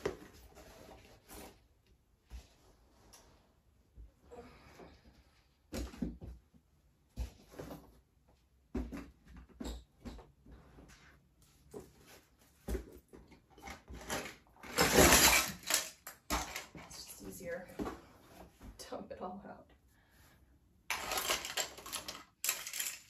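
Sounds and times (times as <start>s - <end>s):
knocks and clicks of handled toys: 12.7s - 17.2s, 20.9s - 23.0s.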